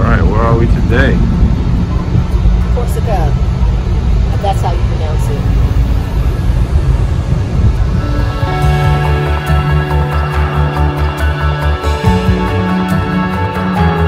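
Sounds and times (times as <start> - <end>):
loud low rumble: 0.0 - 13.3.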